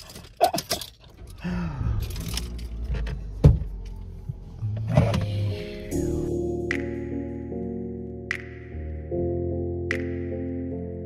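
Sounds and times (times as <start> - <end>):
car cabin rumble: 1.0 - 5.9
music: 4.6 - 11.0.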